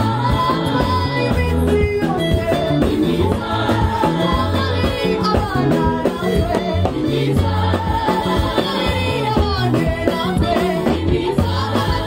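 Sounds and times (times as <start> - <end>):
choir singing gospel over band: 0.0 - 12.0.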